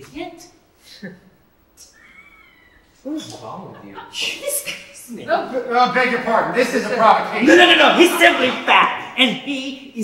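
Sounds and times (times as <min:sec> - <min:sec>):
faint high-pitched cry: 0:01.8 - 0:03.1.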